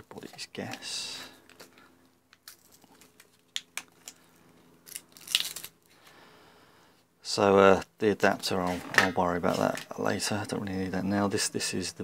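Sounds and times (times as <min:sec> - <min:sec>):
plastic packaging crinkling: 0:02.3 - 0:05.8.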